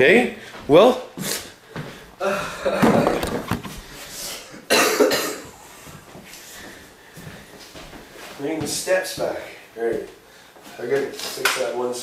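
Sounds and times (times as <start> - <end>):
man coughing: 4.5 - 5.6.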